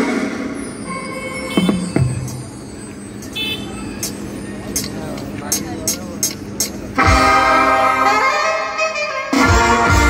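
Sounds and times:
road traffic noise: 0.0s - 10.0s
indistinct voices: 0.8s - 7.4s.

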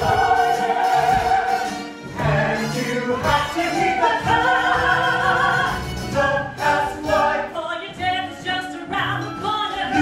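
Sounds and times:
choir singing show tune: 0.0s - 7.6s, 9.8s - 10.0s.

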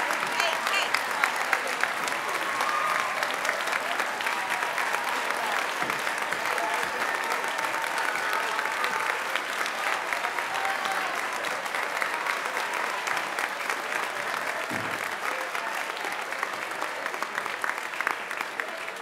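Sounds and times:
crowd applauding: 0.0s - 19.0s.

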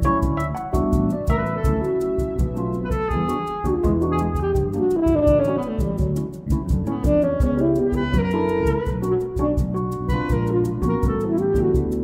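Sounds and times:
electric bass: 0.0s - 12.0s
percussion beat: 0.0s - 12.0s
tenor saxophone melody: 1.3s - 12.0s.

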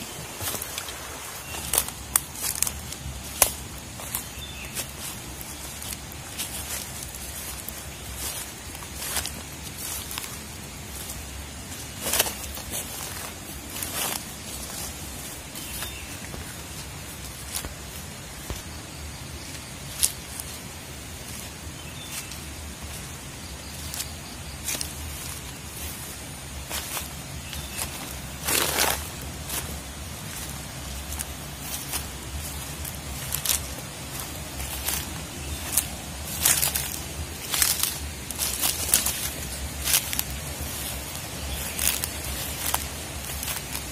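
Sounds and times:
brushing through undergrowth: 0.0s - 43.9s
footsteps crunching through dry leaves: 0.0s - 43.9s.

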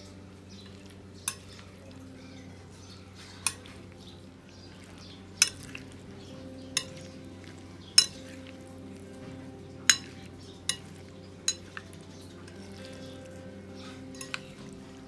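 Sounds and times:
soft wet stirring: 0.0s - 15.0s
spoon clinking against bowl: 0.5s - 3.8s, 4.9s - 15.0s.

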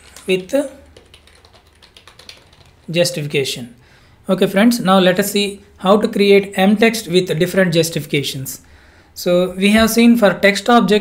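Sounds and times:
typing on computer keyboard: 0.0s - 2.9s.

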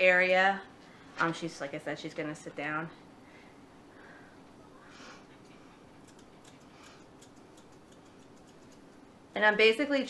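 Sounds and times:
thinning shears snipping hair: 6.0s - 9.1s.

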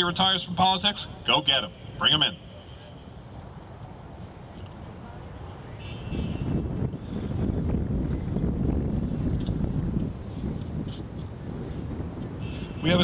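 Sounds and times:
wind buffeting microphone: 4.0s - 13.0s.

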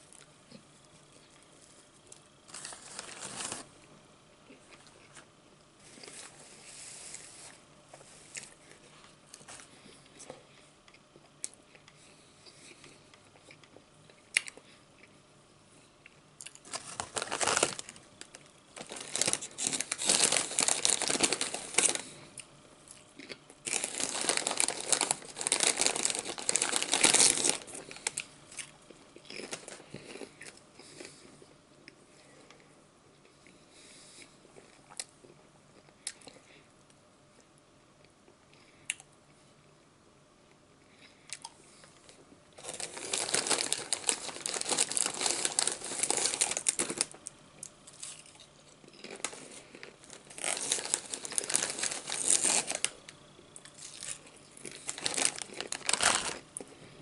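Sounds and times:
chip bag crinkling: 1.1s - 3.7s, 16.4s - 31.2s, 42.1s - 56.8s
chewing a sandwich: 8.0s - 15.2s, 15.8s - 36.6s, 40.4s - 56.9s.

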